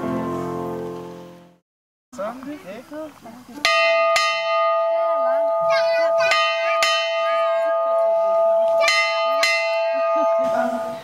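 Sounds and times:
bell clapper striking: 3.7s - 11.0s
bell ringing tone: 3.7s - 11.0s.

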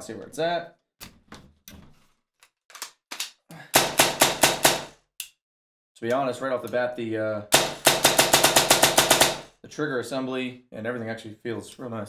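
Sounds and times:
airsoft rifle shots: 3.8s - 5.0s, 7.5s - 9.5s.

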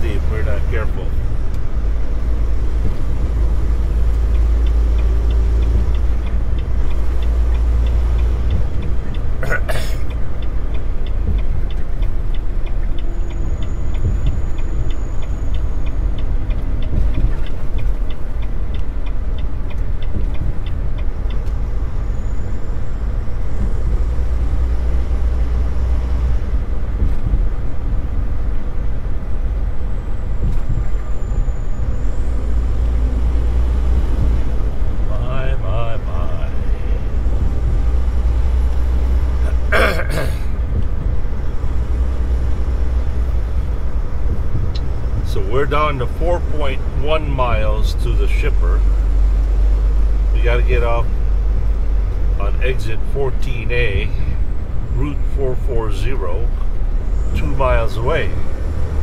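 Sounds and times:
light rapid ticking: 0.0s - 39.8s
truck engine and road rumble: 0.0s - 59.0s.

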